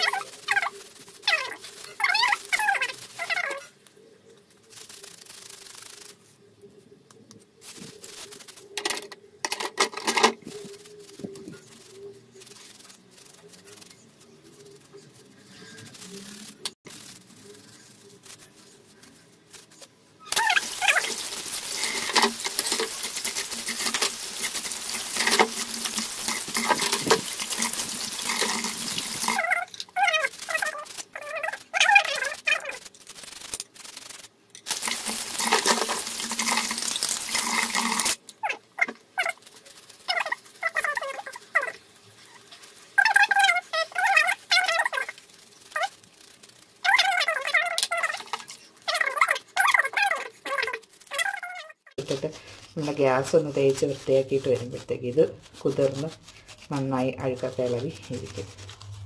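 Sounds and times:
squeaky scrubbing of wet metal: 0.0s - 3.8s, 20.2s - 32.8s, 34.5s - 39.4s, 46.8s - 51.9s
tap water running into basin: 20.6s - 29.4s, 34.7s - 38.2s.

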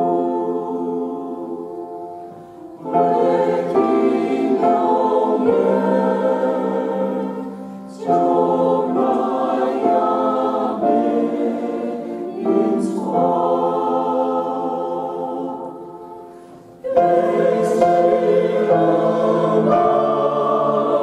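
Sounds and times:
choir singing a hymn: 0.0s - 21.0s
grand piano accompaniment: 0.0s - 21.0s.

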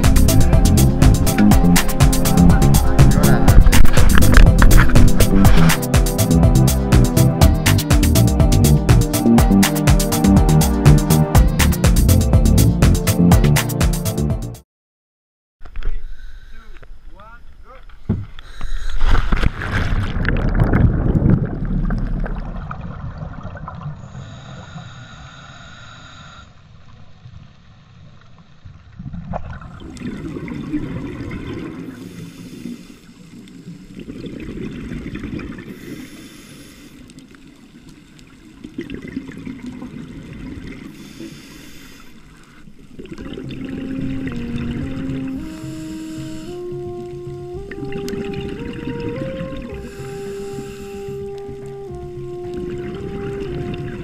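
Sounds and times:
rush of water and bubbles: 0.0s - 12.2s, 18.5s - 25.1s, 26.6s - 54.0s
slow melody music: 0.0s - 14.6s, 43.1s - 54.0s
exhaled bubbles from regulator: 29.3s - 32.8s, 33.7s - 36.1s, 38.6s - 41.1s, 42.9s - 54.0s.

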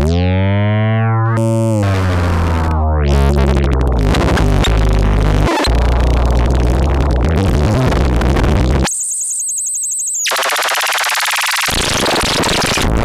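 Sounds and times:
distorted synthesizer noise with bass: 0.0s - 13.0s.

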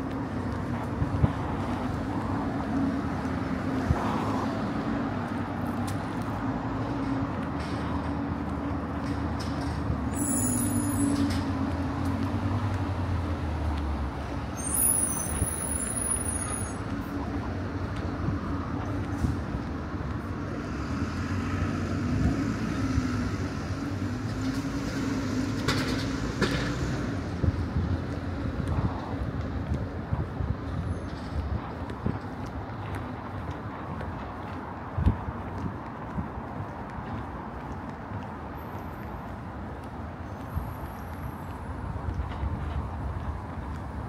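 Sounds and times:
road traffic hum: 0.0s - 44.0s.

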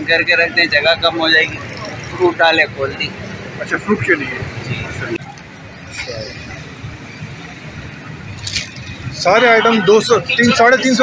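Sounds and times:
rumble of traffic and crowd: 0.0s - 11.0s.

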